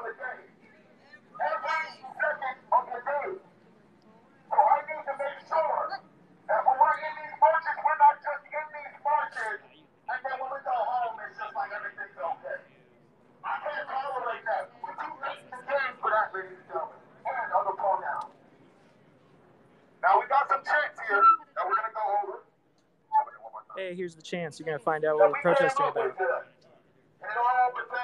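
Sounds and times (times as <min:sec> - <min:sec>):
person talking over telephone: 0:01.4 - 0:03.4, 0:04.5 - 0:12.6, 0:23.1 - 0:26.4.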